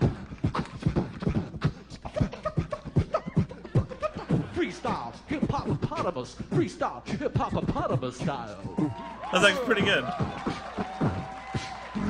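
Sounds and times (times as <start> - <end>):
beatboxing into microphone: 0.0 - 4.5.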